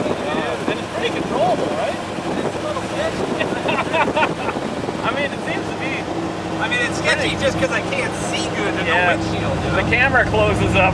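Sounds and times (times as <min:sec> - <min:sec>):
wind noise on microphone: 0:00.0 - 0:06.5
car engine running: 0:00.0 - 0:10.9
indistinct voices talking: 0:00.0 - 0:10.9.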